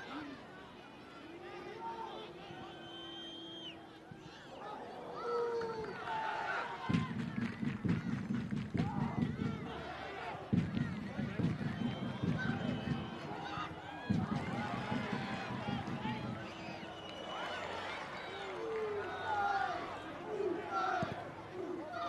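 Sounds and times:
players shouting: 3.9s - 7.3s, 8.8s - 22.0s.

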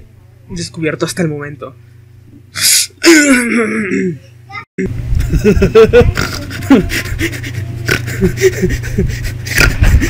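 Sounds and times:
low electrical hum: 0.0s - 10.0s
person snorting through nose: 7.8s - 8.2s, 9.4s - 10.0s.

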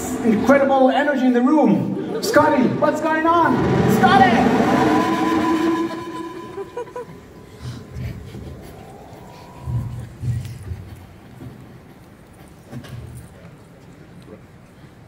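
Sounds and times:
low rumbles: 2.2s - 11.2s
loud sustained electronic hum: 2.5s - 10.3s
tone rising in pitch: 2.7s - 10.5s.

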